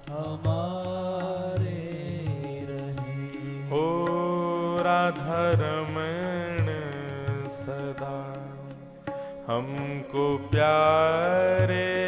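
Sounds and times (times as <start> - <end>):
tabla strokes: 0.0 - 12.0.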